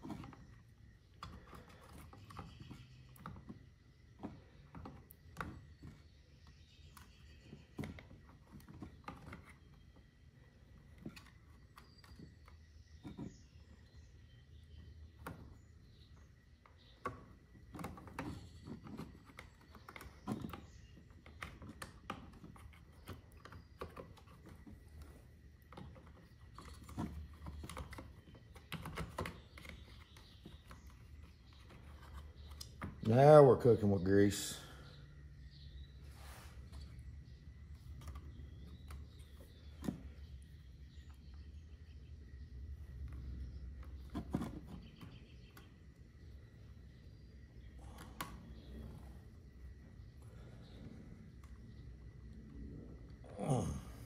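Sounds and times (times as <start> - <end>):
clicks and rustles of hands working: 0.0 - 33.2, 36.5 - 53.2.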